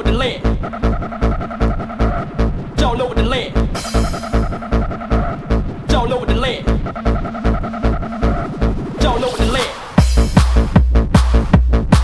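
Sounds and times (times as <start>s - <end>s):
electronic dance music: 0.0s - 12.0s
kick drum beat: 10.0s - 12.0s.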